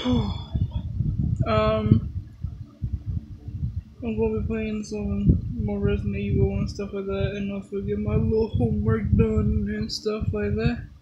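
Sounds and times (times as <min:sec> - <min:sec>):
phone microphone handling rumble: 0:00.0 - 0:11.0.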